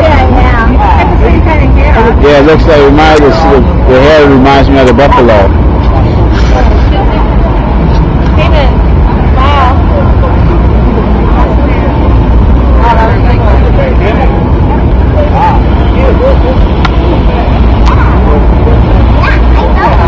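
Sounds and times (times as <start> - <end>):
distant voices: 0.0 - 20.0
loud low rumble: 0.0 - 20.0.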